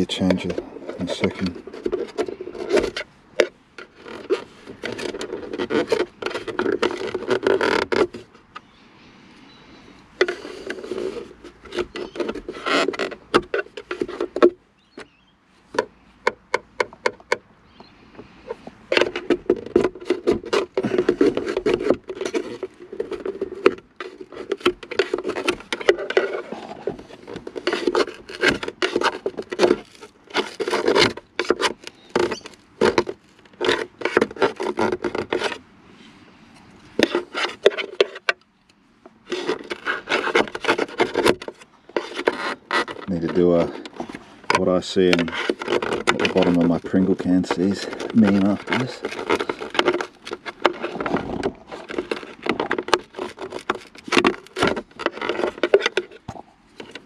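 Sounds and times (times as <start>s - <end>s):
plastic trim rubbing and clicking: 0.0s - 8.7s, 10.2s - 17.5s, 18.2s - 35.6s, 37.0s - 57.0s.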